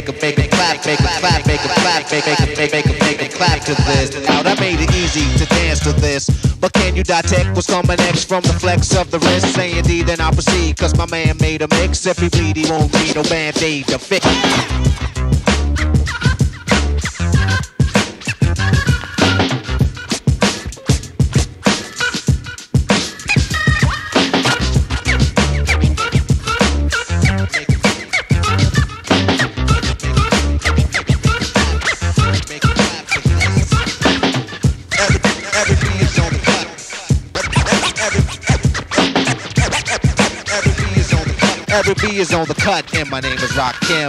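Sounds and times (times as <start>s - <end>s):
drum machine beat: 0.0s - 44.0s
scratched turntable sample: 0.0s - 44.0s
deep bass: 4.6s - 7.7s, 8.5s - 12.8s, 14.5s - 20.0s, 24.5s - 27.7s, 28.3s - 32.6s, 33.3s - 34.2s, 35.8s - 36.4s, 40.7s - 41.4s.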